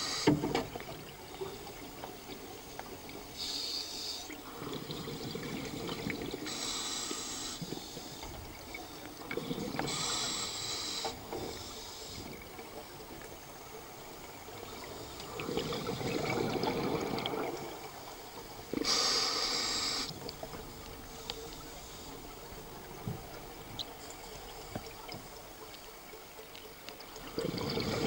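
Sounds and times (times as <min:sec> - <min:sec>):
regulator hissing inhalations: 0:00.0 - 0:00.4, 0:03.4 - 0:04.4, 0:06.5 - 0:08.3, 0:09.8 - 0:12.9, 0:18.8 - 0:20.3
bubbling exhalations: 0:04.4 - 0:06.5, 0:15.2 - 0:17.9, 0:27.2 - 0:28.0.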